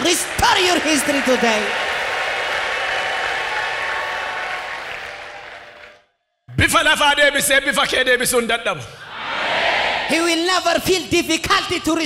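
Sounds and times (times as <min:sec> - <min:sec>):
crowd applauding: 0:00.0 - 0:06.0.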